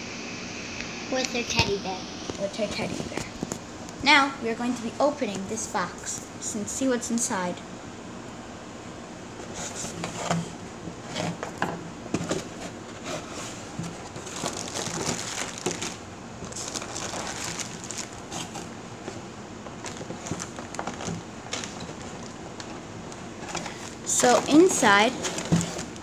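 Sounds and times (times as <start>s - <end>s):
plastic packaging crinkling: 13.2s - 26.0s.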